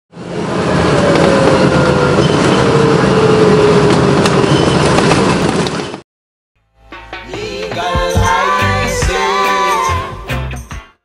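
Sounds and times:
street traffic rumble: 0.1 - 6.0.

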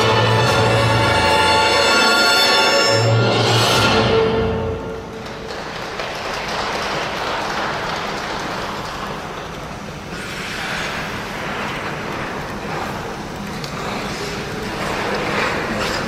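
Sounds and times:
audience applauding: 4.8 - 10.1.

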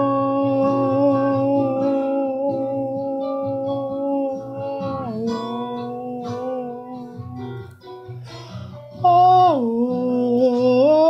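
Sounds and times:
person singing long notes: 0.0 - 7.8, 9.0 - 11.0
plucked guitar notes: 0.0 - 11.0.

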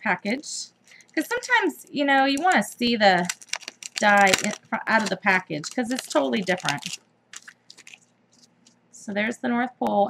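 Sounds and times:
plastic packaging crinkling: 2.3 - 8.8.

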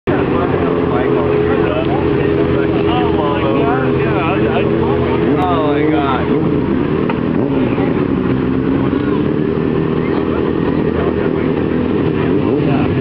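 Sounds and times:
motorcycle engine idling: 0.1 - 13.0
people talking: 0.1 - 13.0.

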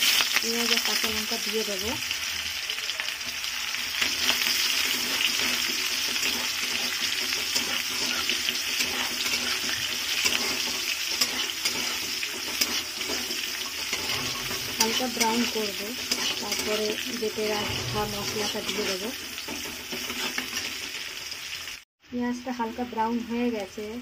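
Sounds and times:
vegetables sizzling in hot oil: 0.0 - 24.0
spatula scraping and clicking on pan: 4.2 - 20.8.

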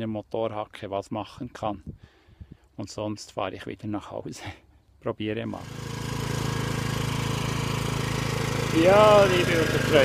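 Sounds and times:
tiller engine running: 5.5 - 10.0
man talking: 8.7 - 10.0.

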